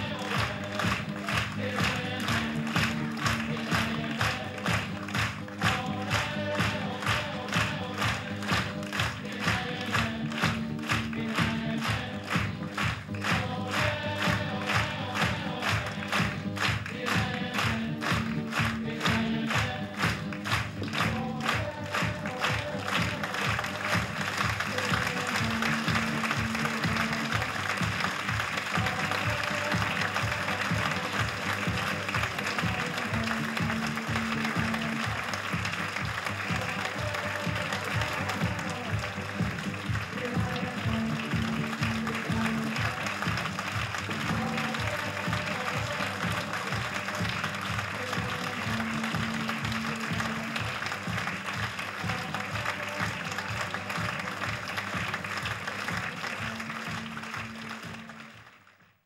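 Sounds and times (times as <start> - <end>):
audience applauding: 0.0 - 59.0.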